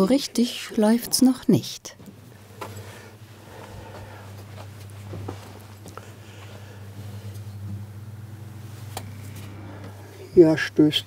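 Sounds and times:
motor humming: 2.0 - 10.4.

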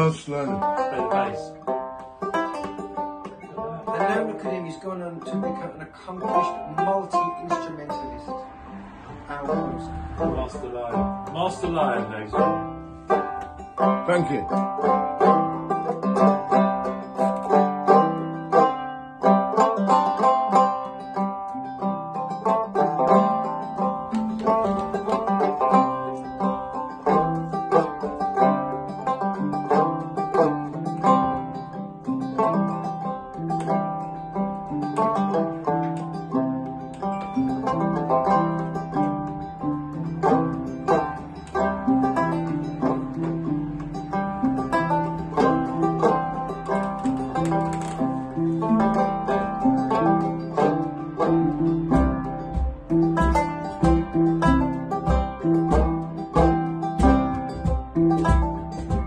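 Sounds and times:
banjo picking lively tune: 0.0 - 59.0
lower plucked notes: 0.0 - 59.0.

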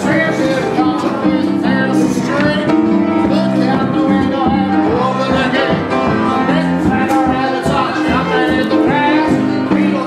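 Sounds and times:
boogie-woogie piano: 0.0 - 10.0.

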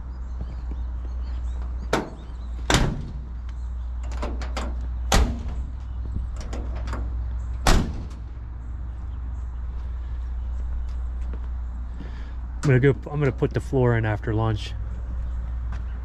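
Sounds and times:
truck door knocks and latch clicks: 1.8 - 3.3, 4.0 - 8.2
truck door slamming: 1.8 - 3.4, 4.0 - 8.4.

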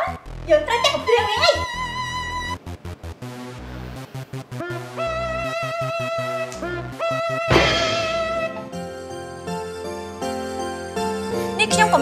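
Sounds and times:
background music: 0.0 - 12.0
woman exclaiming: 0.5 - 2.6.

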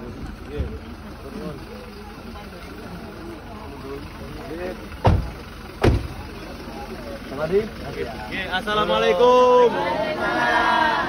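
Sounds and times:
car engine idling: 0.0 - 11.0
murmur of voices: 0.0 - 11.0
loud thumps: 5.0 - 6.2.

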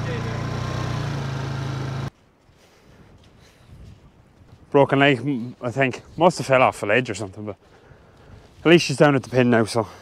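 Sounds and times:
vehicle engine running: 0.0 - 2.1
faint outdoor background: 0.0 - 10.0.

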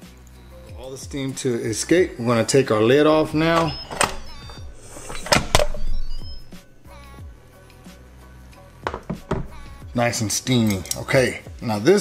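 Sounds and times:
soft background music: 0.0 - 12.0
plastic lid clicks and knocks: 8.9 - 9.6.

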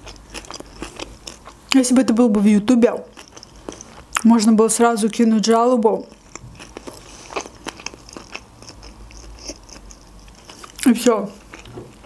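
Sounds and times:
close chewing with wet mouth clicks: 0.0 - 1.8, 2.8 - 5.3, 6.0 - 12.0.

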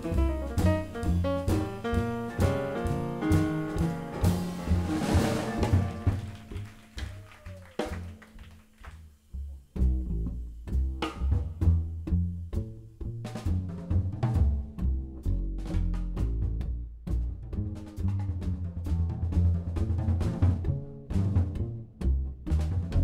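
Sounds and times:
jazz band playing: 0.0 - 8.5, 9.6 - 23.0.

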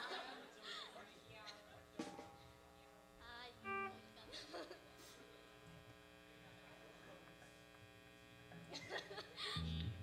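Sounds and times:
faint amplifier hum: 0.0 - 10.0.

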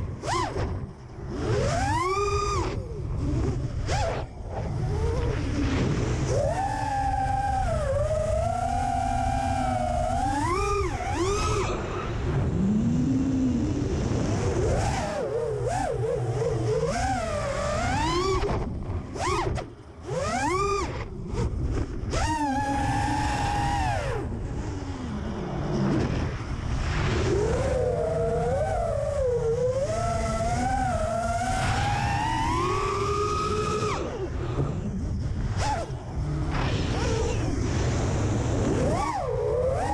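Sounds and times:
quadcopter propellers whining: 0.0 - 39.9
wind rumble on microphone: 0.0 - 39.9.

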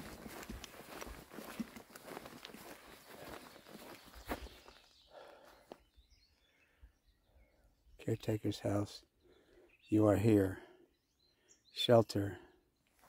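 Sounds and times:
footsteps on grass: 0.0 - 5.7.

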